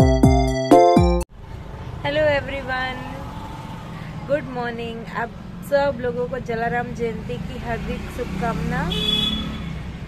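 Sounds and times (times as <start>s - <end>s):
high-pitched tone: 0.0s - 1.3s
road traffic hum: 1.3s - 10.0s
woman speaking: 2.1s - 3.3s, 4.3s - 9.0s.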